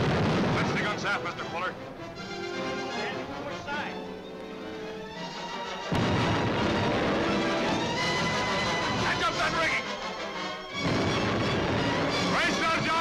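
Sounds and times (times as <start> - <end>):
loud cannon blast: 0.0 - 1.4, 5.9 - 9.8, 10.8 - 13.0
orchestral film music: 0.2 - 13.0.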